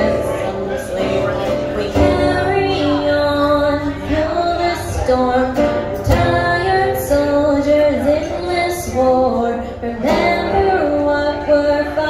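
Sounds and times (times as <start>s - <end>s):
acoustic guitar strumming: 0.0s - 12.0s
girl singing: 0.0s - 12.0s.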